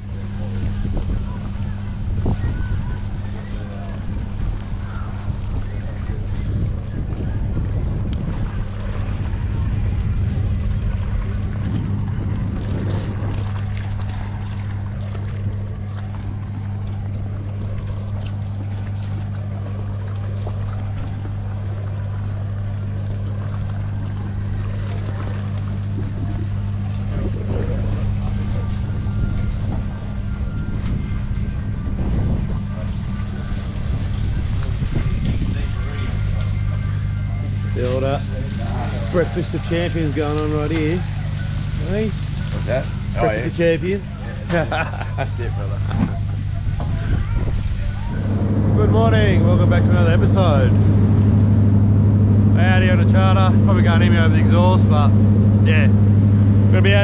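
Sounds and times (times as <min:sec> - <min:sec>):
boat engine humming: 0:00.0 - 0:57.0
water noise: 0:00.0 - 0:57.0
wind: 0:00.0 - 0:57.0.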